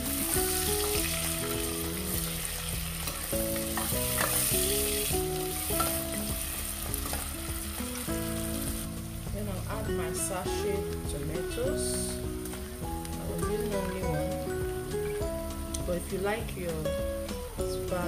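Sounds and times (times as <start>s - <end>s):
onions sizzling in oil: 0.0s - 16.4s.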